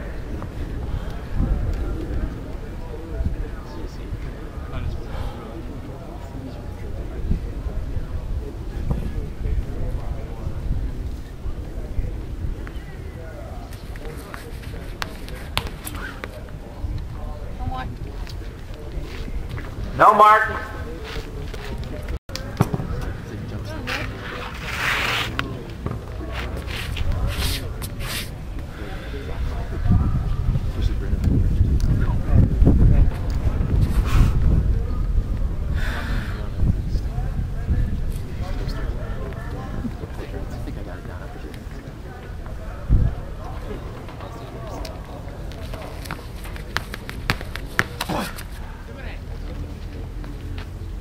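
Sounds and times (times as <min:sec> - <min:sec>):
wind rumble on microphone: 0:00.0 - 0:15.5, 0:26.7 - 0:43.9
light scrapes: 0:23.9 - 0:25.5
distant voices: 0:32.0 - 0:51.0.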